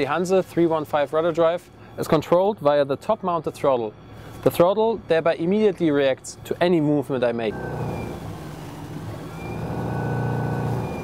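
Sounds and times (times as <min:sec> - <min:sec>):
electric motor humming: 0:07.5 - 0:11.0.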